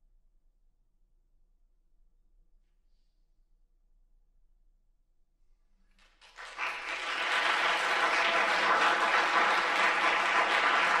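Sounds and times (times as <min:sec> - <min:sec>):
audience applause: 0:06.0 - 0:11.0.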